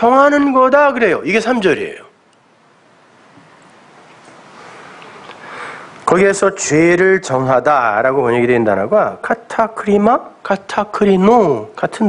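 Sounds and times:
man speaking: 0:00.0 - 0:02.2, 0:06.1 - 0:12.0
man breathing in near microphone: 0:04.5 - 0:06.0.

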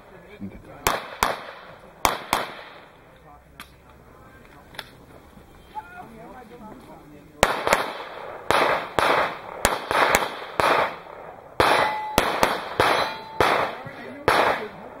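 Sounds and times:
handgun shots with echo: 0:00.8 - 0:02.8, 0:11.6 - 0:14.8.

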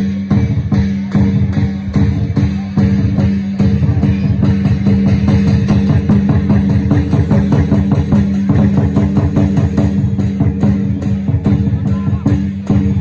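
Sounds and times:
drums and cymbals beating fast: 0:00.0 - 0:13.0.

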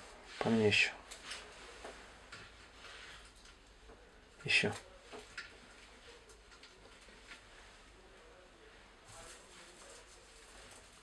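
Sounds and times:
soft rustle: 0:00.0 - 0:11.0.

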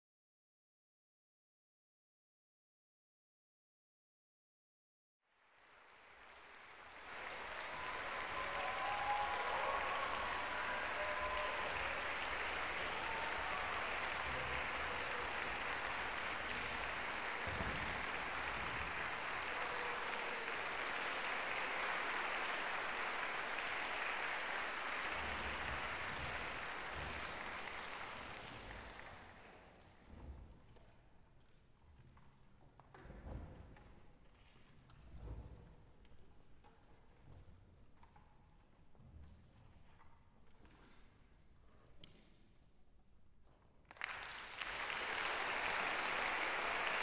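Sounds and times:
audience applauding: 0:05.3 - 0:29.6, 0:43.9 - 0:47.0.

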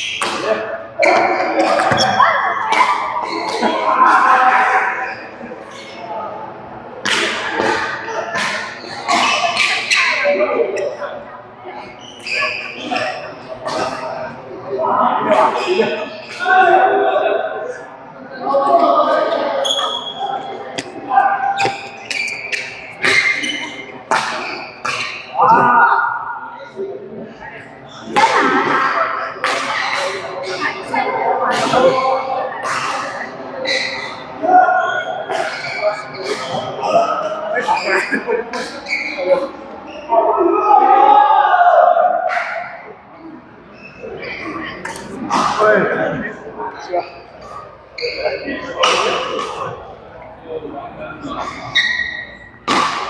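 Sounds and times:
sharp smacks echoing in hall: 0:07.0 - 0:09.8, 0:52.6 - 0:53.0.

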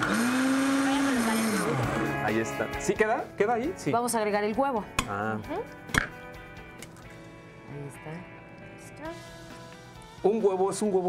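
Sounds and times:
electric blender motor: 0:00.0 - 0:02.3.

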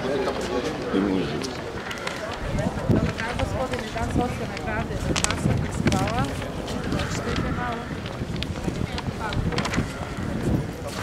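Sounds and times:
people talking: 0:00.0 - 0:11.0
street noise: 0:00.0 - 0:11.0.

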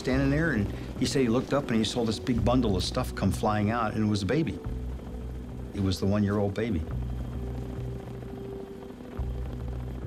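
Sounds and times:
helicopter hovering rumble: 0:00.0 - 0:10.0.

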